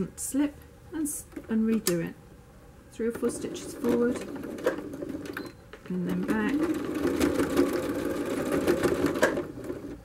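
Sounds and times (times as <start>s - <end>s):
electric sewing machine running fast: 6.3s - 10.0s.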